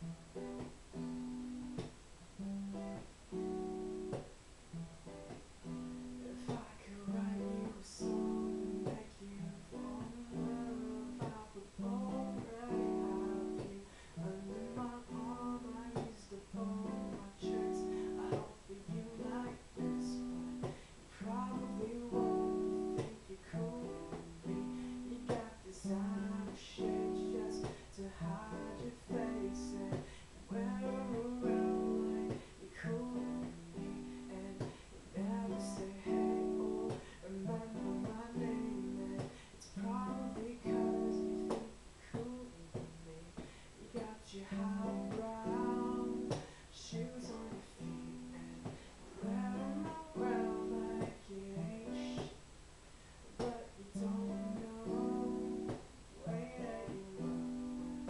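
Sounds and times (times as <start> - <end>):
man singing quietly: 0.0 - 52.5, 53.2 - 58.0
acoustic guitar: 0.0 - 58.0.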